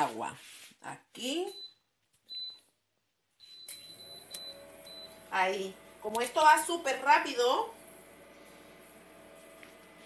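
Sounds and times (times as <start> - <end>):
cooktop touch controls beeping: 1.4 - 2.7, 3.4 - 5.6
cooktop humming: 3.7 - 10.0.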